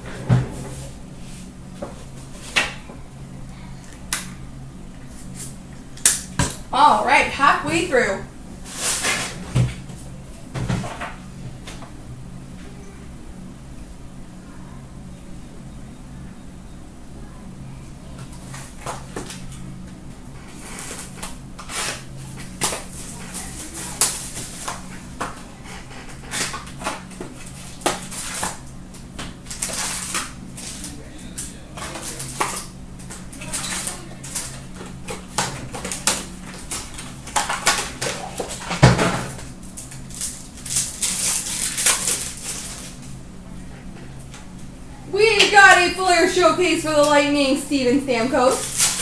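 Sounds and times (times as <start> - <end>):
low steady hum: 0.0 - 49.0
foil card packs rustling: 29.3 - 43.1, 45.6 - 49.0.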